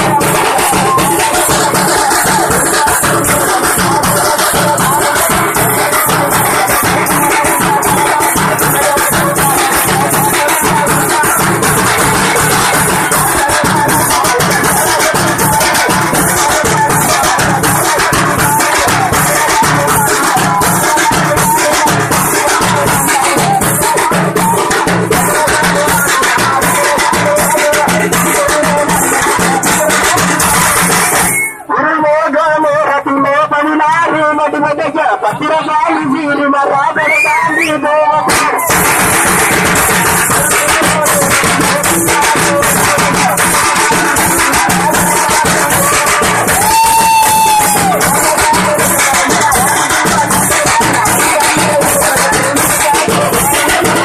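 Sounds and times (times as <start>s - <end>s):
frame drums beating fast rhythm: 0.0s - 31.7s, 38.2s - 54.0s
jingling percussion: 0.0s - 31.7s, 38.3s - 54.0s.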